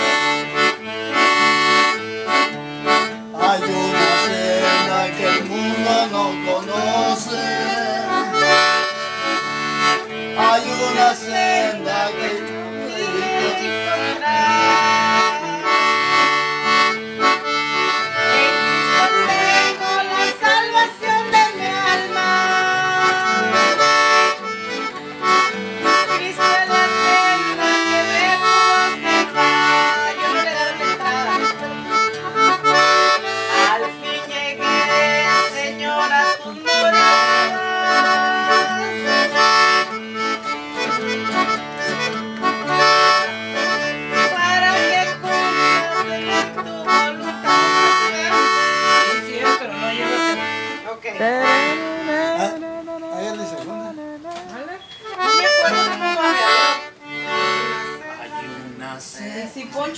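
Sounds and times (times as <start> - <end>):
strummed acoustic guitar: 0.0 - 58.8
piano accordion: 0.0 - 59.9.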